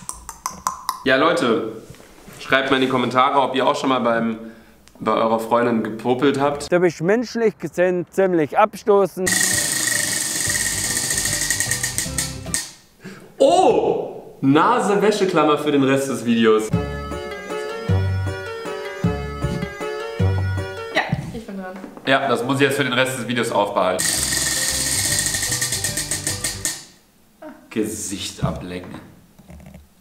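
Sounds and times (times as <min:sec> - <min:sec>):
music: 0:09.3 - 0:12.7, 0:16.6 - 0:21.6, 0:23.9 - 0:26.8
prize wheel clicker ticking: 0:09.3 - 0:12.7, 0:24.0 - 0:26.9.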